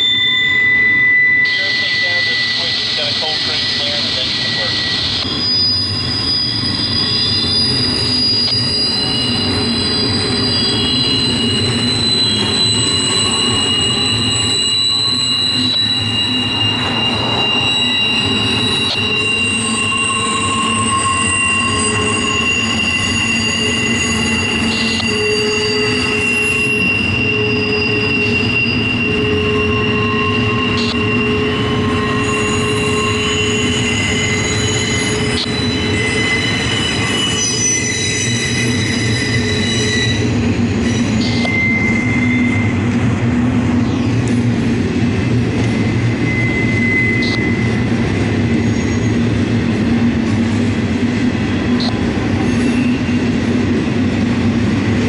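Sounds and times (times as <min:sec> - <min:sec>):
freight train wheels rumbling on rail: 0:00.0 - 0:55.0
high-pitched wheel squeals: 0:00.0 - 0:55.0.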